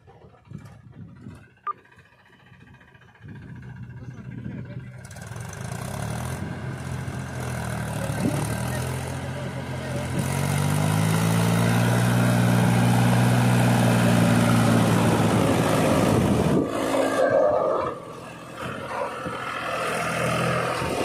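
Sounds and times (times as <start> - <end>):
tractor diesel engine under load: 0.0 - 21.0.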